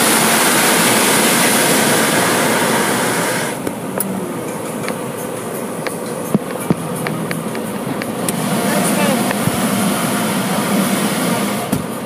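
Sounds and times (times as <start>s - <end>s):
car wash equipment rushing: 0.0s - 12.0s.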